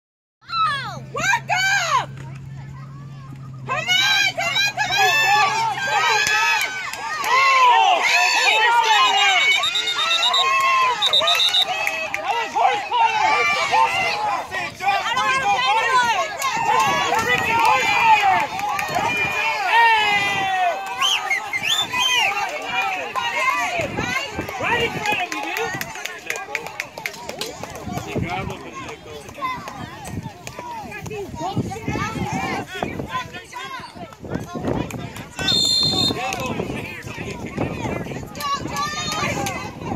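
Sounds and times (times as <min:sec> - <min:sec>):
spectators shouting and cheering: 0:00.4 - 0:39.9.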